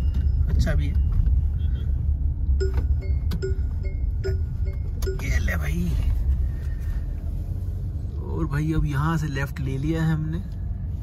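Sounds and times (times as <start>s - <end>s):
seat belt reminder chime beeping: 0.0s - 1.7s, 2.5s - 5.8s
low rumble of car rolling: 0.0s - 11.0s.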